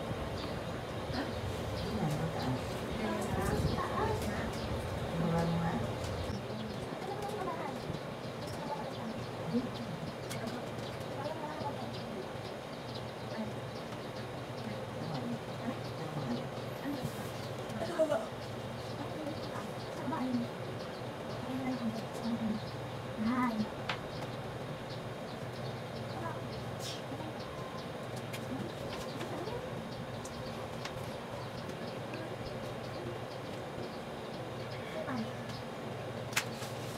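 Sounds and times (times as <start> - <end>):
birds chirping: 0.0 - 36.9
steady low hum: 0.0 - 36.9.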